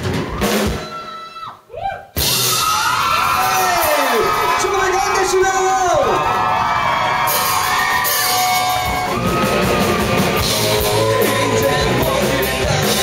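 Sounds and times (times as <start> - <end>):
crowd whooping: 0.0 - 13.0
live rock band playing: 2.2 - 3.6, 6.2 - 13.0.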